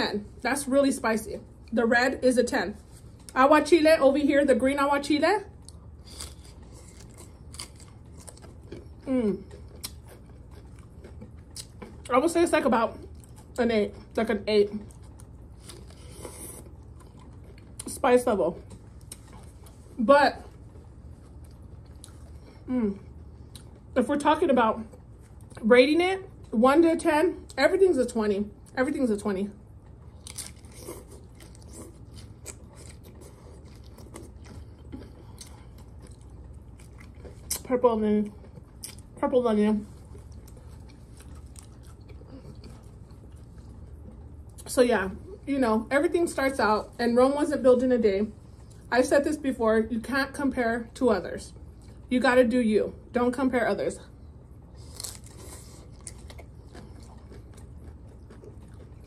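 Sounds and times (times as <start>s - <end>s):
crisp tostada crunching: 5.6s - 12.4s, 29.8s - 37.7s, 54.7s - 59.0s.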